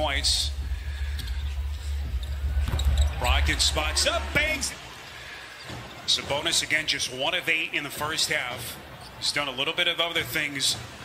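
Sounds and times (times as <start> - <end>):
low arena hum: 0.0 - 5.2.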